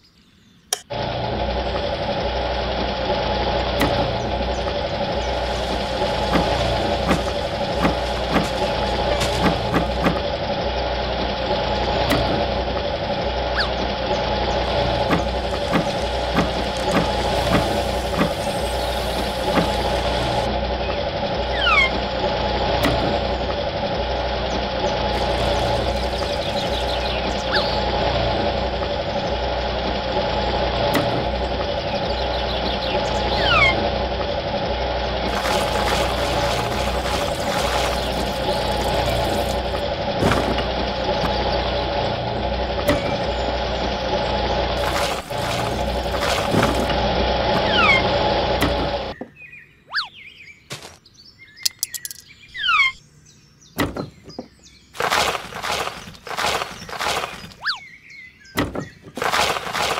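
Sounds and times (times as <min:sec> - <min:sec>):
small electric motor humming: 0:01.2 - 0:20.5, 0:21.4 - 0:31.9.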